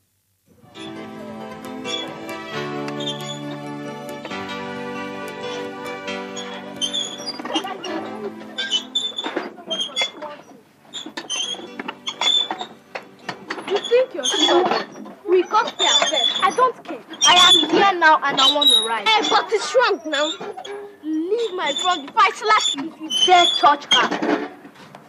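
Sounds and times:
background music: 0.6 - 10.2, 10.8 - 15.4
children shouting and squealing: 5.4 - 11.2, 13.5 - 24.2.

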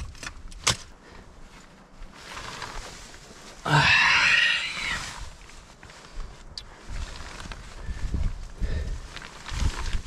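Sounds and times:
person groaning: 3.6 - 5.1.

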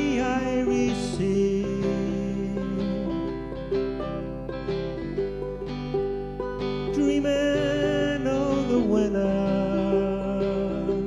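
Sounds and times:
plucked acoustic strings melody: 0.0 - 11.0.

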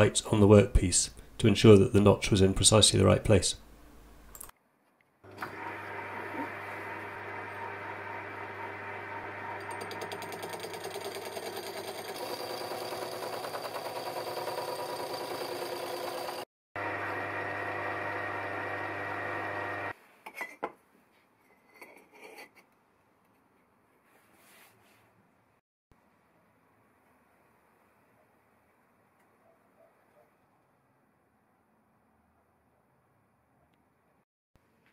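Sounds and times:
lathe hole saw cutting steel: 5.3 - 16.5.

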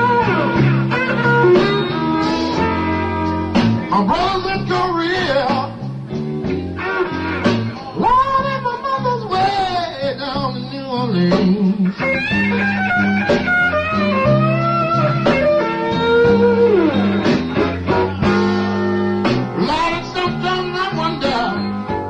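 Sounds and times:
blues band playing: 0.0 - 22.0
lead electric guitar bending notes: 0.0 - 22.0.

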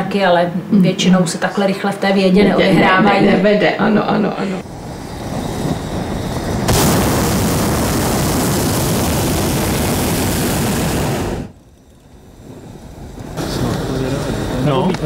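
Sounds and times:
propane burner blast: 4.6 - 15.0.

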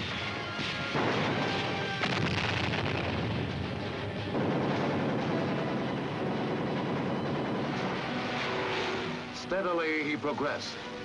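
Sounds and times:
gunfire: 0.5 - 9.0
explosions: 0.6 - 5.9.

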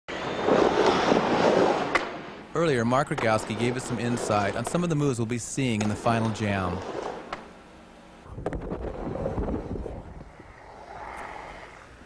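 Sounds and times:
skateboard clack: 5.7 - 7.5
skateboard wheels rumbling on wood: 8.4 - 12.0.

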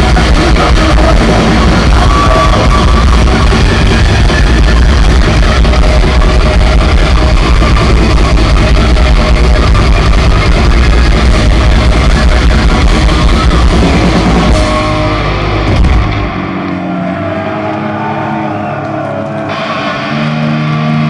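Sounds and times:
heavy metal band playing live: 0.0 - 21.0
ringing guitar notes: 13.2 - 21.0.

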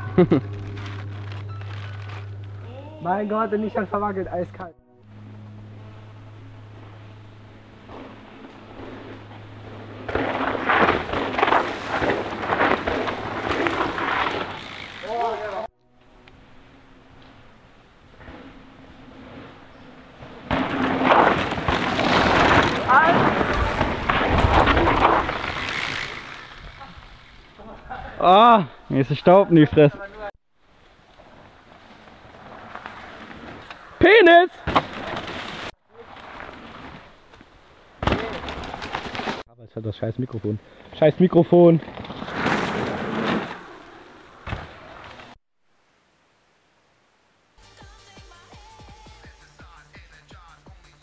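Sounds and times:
low steady hum: 0.0 - 11.6
bike tyres skidding on dirt: 6.7 - 15.7, 16.8 - 28.3, 30.8 - 39.4, 40.8 - 45.4.

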